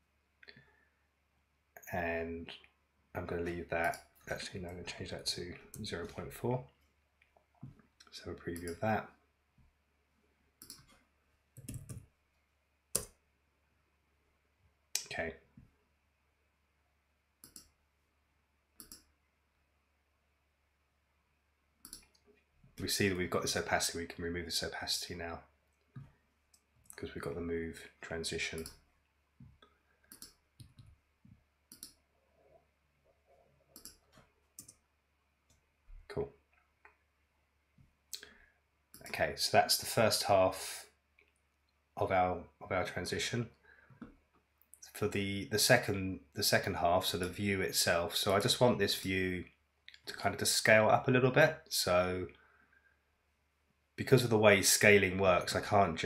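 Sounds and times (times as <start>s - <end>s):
computer mouse clicks: 8.5s - 8.8s, 10.6s - 11.0s, 11.6s - 12.1s, 17.4s - 17.8s, 18.8s - 19.1s, 21.8s - 22.2s, 30.0s - 31.0s, 31.7s - 32.0s, 33.7s - 34.8s
keyboard typing: 11.6s - 12.1s.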